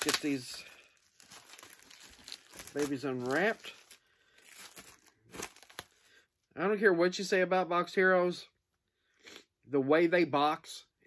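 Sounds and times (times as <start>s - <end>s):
crinkling plastic comic sleeves: 0.0s - 6.5s.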